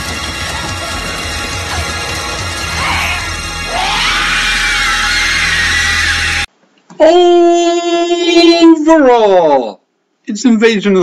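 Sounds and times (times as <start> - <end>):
alien shriek: 2.7 - 6.5.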